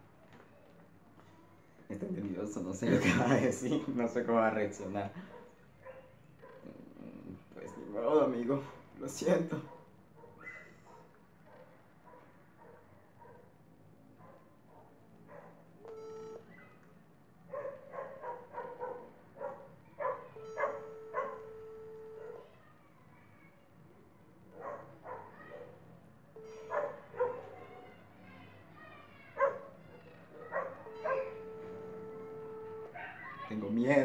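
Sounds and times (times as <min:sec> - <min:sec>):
dog barking: 0:05.2 - 0:06.8, 0:09.6 - 0:13.6, 0:14.2 - 0:16.8, 0:17.5 - 0:22.5, 0:24.5 - 0:25.8, 0:26.4 - 0:27.9, 0:29.3 - 0:33.5
phone ringback tone: 0:15.9 - 0:16.5, 0:20.4 - 0:22.4, 0:26.4 - 0:26.8, 0:30.8 - 0:33.0.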